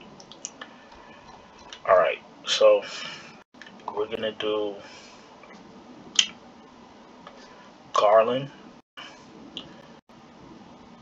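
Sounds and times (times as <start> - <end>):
faint room hiss: 0.0 - 11.0.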